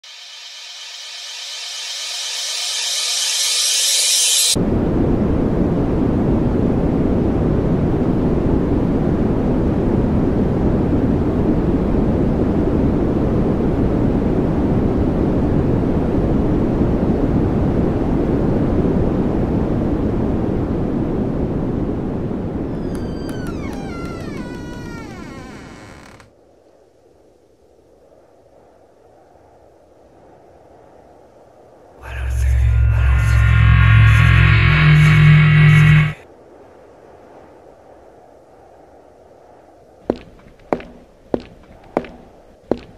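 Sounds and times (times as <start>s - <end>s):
bright hiss: 0.0s - 4.6s
faint low hum: 32.0s - 36.2s
loud steady rumbling: 32.0s - 36.2s.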